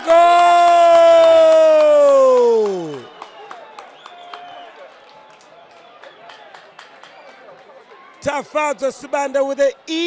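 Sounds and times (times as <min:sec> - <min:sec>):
sparse crowd: 0:00.0 - 0:10.0.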